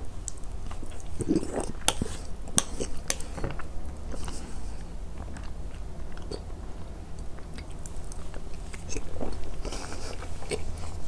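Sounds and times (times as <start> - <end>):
mouth chewing food: 0.2 - 11.0.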